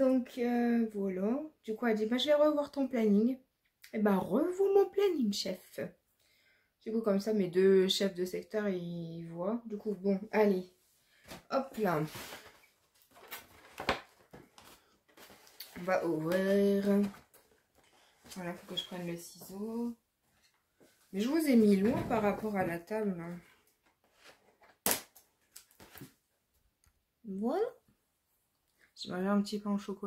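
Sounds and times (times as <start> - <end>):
rustling: 11.1 - 19.6.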